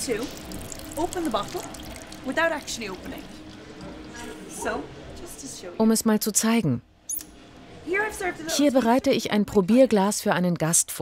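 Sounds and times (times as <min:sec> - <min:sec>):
wine pouring into glass: 0:00.1 - 0:04.5.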